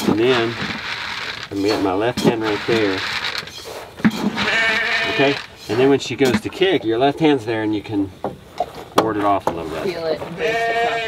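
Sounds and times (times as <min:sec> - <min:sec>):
farm animal bleating: 0:04.3 - 0:05.6, 0:10.3 - 0:11.0.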